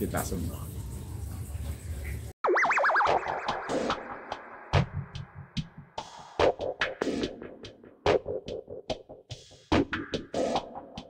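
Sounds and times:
electronic music: 0:02.0 - 0:08.8
synthesized boing tone warbling: 0:02.4 - 0:05.1.

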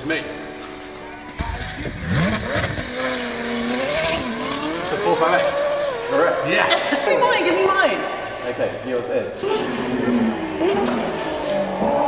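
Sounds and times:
sports car engine revving: 0:01.3 - 0:07.0, 0:09.3 - 0:12.0.

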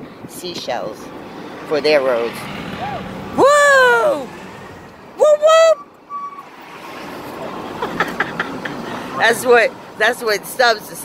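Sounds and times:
truck road and tyre noise: 0:00.0 - 0:11.0.

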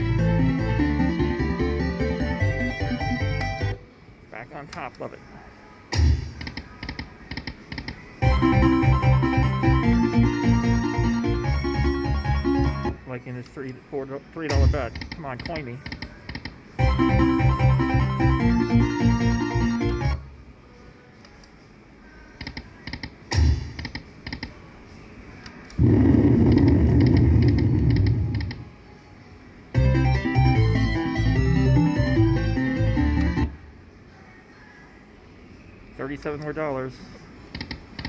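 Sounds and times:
beeping synthesized slot machine tune: 0:08.2 - 0:13.0, 0:16.8 - 0:20.2, 0:29.8 - 0:33.5
loud low noise: 0:25.7 - 0:28.6.

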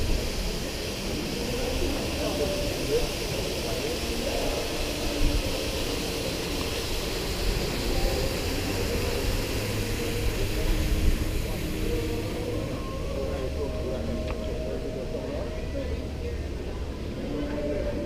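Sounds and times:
distant chatter of passers-by: 0:00.0 - 0:18.0
steady low rumble: 0:00.0 - 0:18.0.

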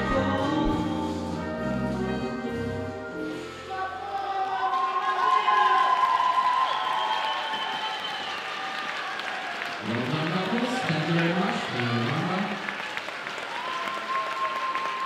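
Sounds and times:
rumba dance music: 0:00.0 - 0:05.4
audience applause: 0:04.4 - 0:15.0.

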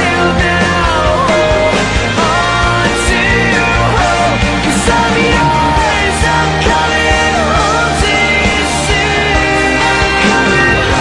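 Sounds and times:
man singing with rock band: 0:00.0 - 0:11.0.

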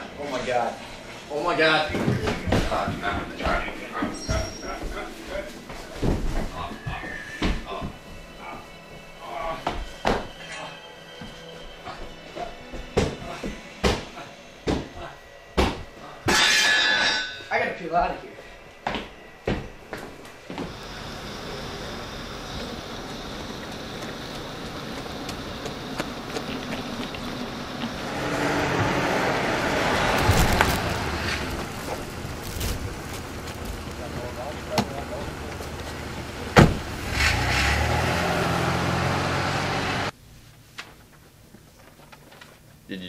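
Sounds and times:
tyres hissing on wet asphalt: 0:20.6 - 0:40.1
car engine running: 0:20.7 - 0:40.1
car door slamming: 0:36.4 - 0:36.9.

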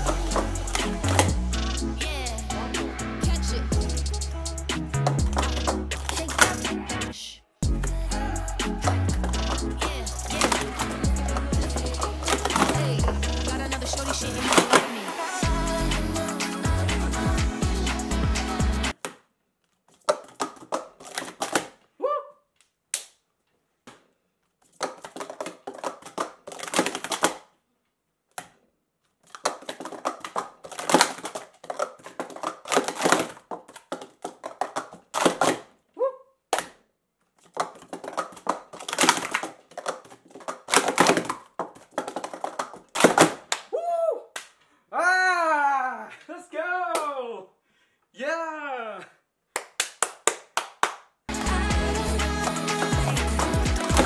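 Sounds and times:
plastic cups clattering: 0:00.0 - 0:01.4, 0:05.0 - 0:06.7, 0:08.8 - 0:15.2, 0:19.9 - 0:21.8, 0:24.7 - 0:27.5, 0:29.2 - 0:35.7, 0:37.4 - 0:43.6
person crying out: 0:22.0 - 0:22.4, 0:36.0 - 0:36.2, 0:43.7 - 0:44.3, 0:44.9 - 0:46.2.

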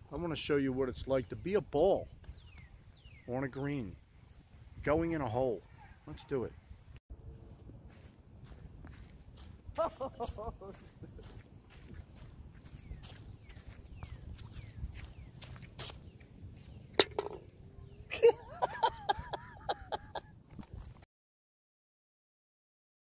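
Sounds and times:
person laughing: 0:09.7 - 0:11.4, 0:18.1 - 0:20.4
golf ball dropping into cup: 0:17.0 - 0:17.5.

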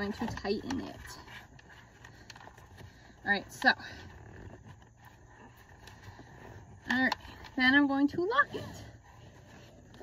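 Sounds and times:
seatbelt rustling: 0:00.0 - 0:10.0.

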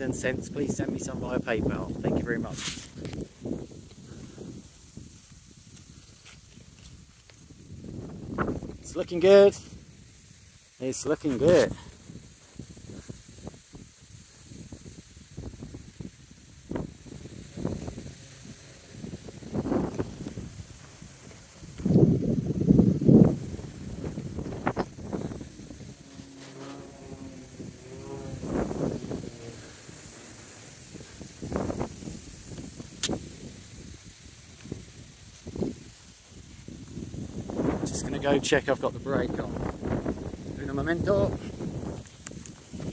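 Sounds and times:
wind buffeting microphone: 0:00.0 - 0:10.6, 0:11.2 - 0:42.9
hum of steady tones: 0:10.8 - 0:42.9.

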